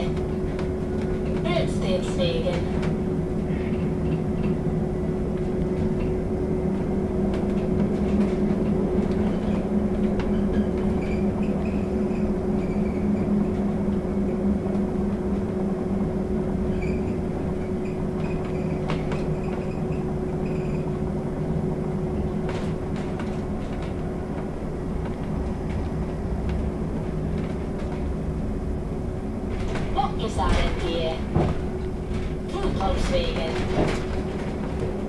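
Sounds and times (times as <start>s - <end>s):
constant hum: 0.0s - 35.0s.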